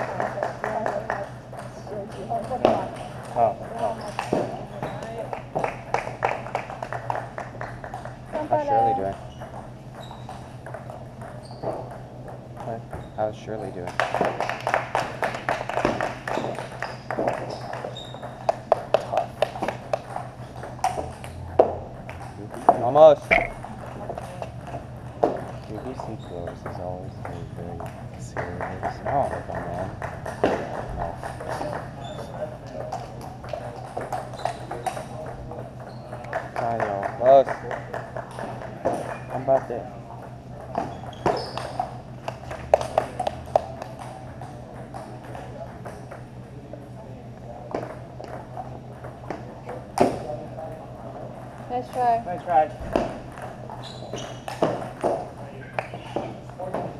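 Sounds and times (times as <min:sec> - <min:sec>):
steady low hum: 0:17.6 - 0:41.1
ping-pong ball clicking: 0:23.3 - 0:23.9.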